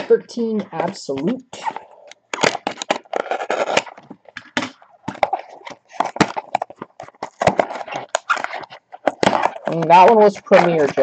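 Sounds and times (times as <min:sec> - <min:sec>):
packaging crackling and rustling: 0:01.8 - 0:11.0.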